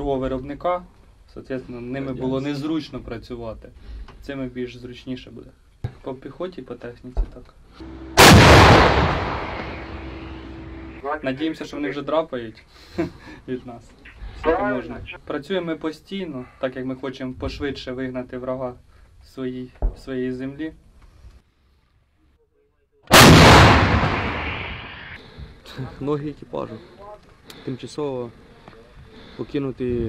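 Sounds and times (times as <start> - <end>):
steady low hum: 7.8 - 11.2
howitzer firing blast: 8.2 - 10.6, 23.1 - 25.2
echo of artillery shot: 8.2 - 10.7, 23.1 - 25.2.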